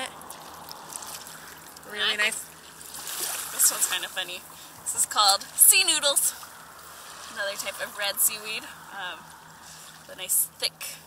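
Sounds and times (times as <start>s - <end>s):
water drips: 0.0s - 7.4s, 8.6s - 10.2s
seawater trickling: 0.0s - 11.0s.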